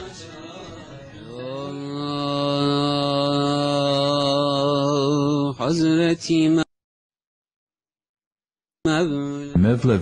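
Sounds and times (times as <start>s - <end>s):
man chanting a held note: 8.9s - 10.0s.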